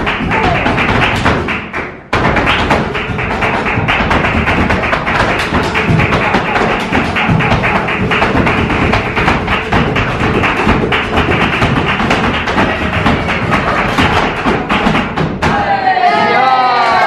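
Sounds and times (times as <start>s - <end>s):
flamenco guitar: 0.0s - 15.5s
hand clapping: 0.0s - 15.5s
heels and toes striking wooden stage: 0.0s - 15.8s.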